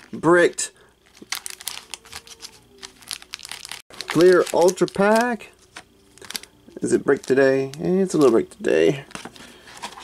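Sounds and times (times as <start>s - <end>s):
card packs crinkling and clicking: 1.0s - 10.0s.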